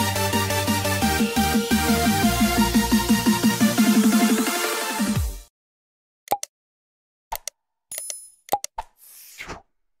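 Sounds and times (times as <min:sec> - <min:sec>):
short pops and clicks: 0:06.3 - 0:06.5, 0:07.3 - 0:09.0.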